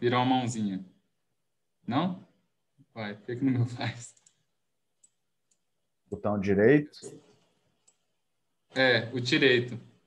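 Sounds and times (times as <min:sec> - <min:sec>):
computer mouse clicks: 0:04.0 - 0:05.7, 0:07.0 - 0:08.1.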